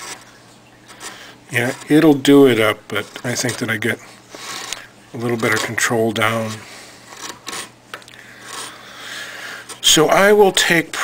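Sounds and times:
carving gouge scraping wood: 4.4 - 7.7.

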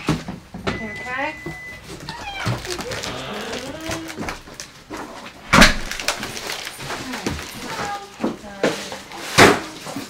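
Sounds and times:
dog whining: 2.0 - 4.4.

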